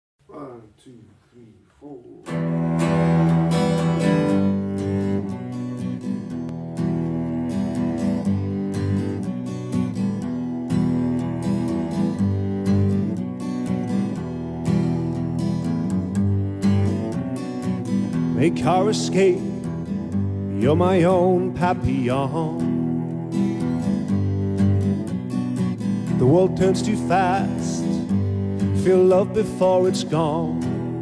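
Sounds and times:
cello holding low notes: 2.2 - 31.0
strummed acoustic guitar: 2.2 - 31.0.

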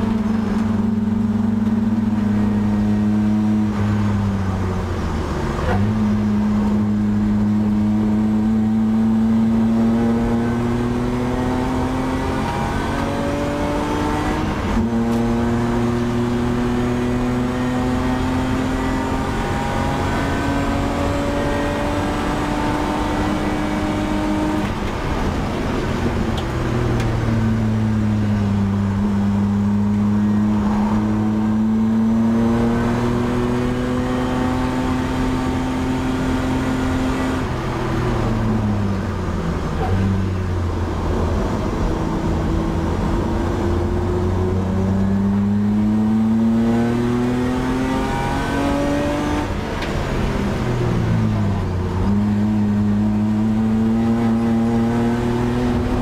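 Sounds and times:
race car engine revving: 0.0 - 56.0.

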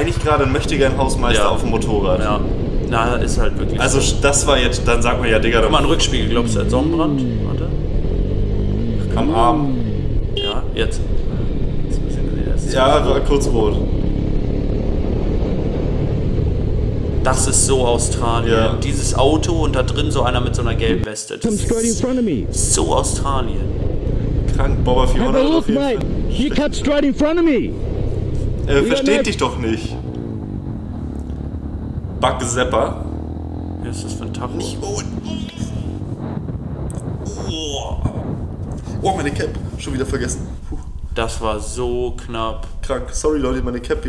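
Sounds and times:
motorcycle engine running: 0.0 - 21.0, 22.1 - 44.0
wind buffeting microphone: 0.0 - 21.0, 21.9 - 44.0
short voice sound: 34.6 - 36.0.

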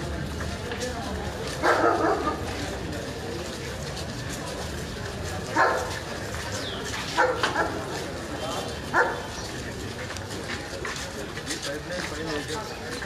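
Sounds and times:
crowd chatter: 0.0 - 13.0
dog barking: 1.6 - 2.4, 5.6 - 6.0, 7.2 - 7.8, 8.9 - 9.3.

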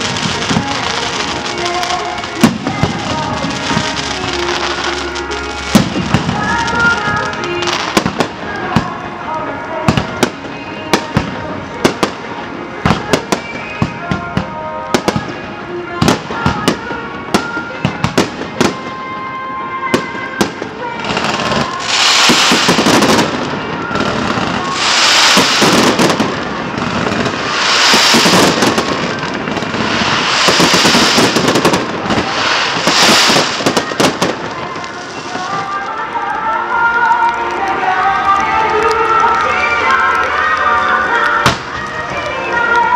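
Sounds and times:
fireworks crackling and hissing: 0.0 - 42.9
firework shells bursting: 27.1 - 34.4.

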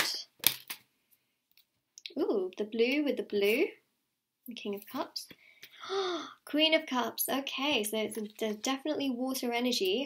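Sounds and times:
cards snapping and clicking: 0.0 - 0.9.

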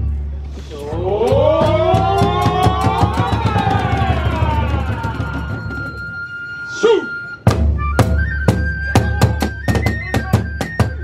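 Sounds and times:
taiko drumming: 0.9 - 6.2, 7.4 - 11.0
bamboo flute high note: 4.9 - 11.0.

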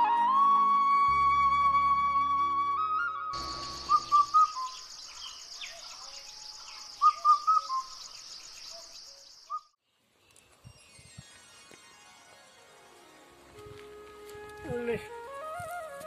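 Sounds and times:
bird chirps: 3.4 - 11.0.

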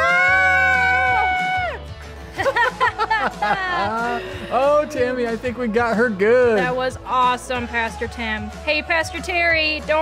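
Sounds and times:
background music: 0.0 - 10.0
laughter: 2.3 - 4.4.

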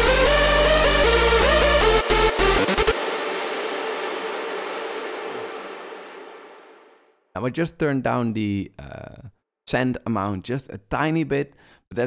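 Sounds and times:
synth lead reverb tail: 0.0 - 7.2.

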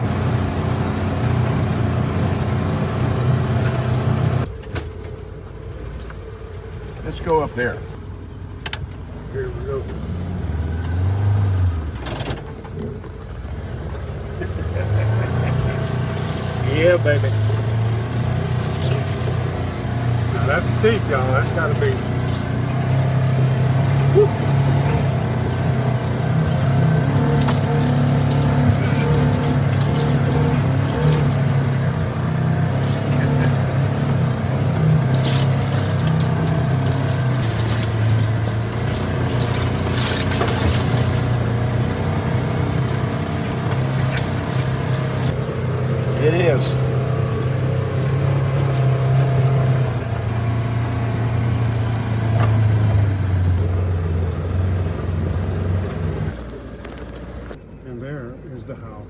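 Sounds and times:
engine running under load: 0.0 - 58.0.

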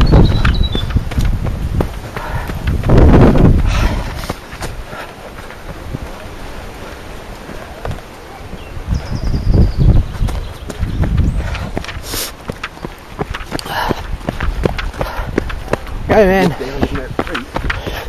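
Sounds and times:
running footsteps on gravel: 0.0 - 18.0.

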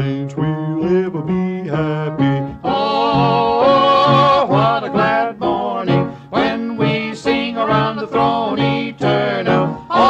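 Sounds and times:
instrumental accompaniment: 0.0 - 10.0
two men singing in harmony: 0.0 - 10.0.

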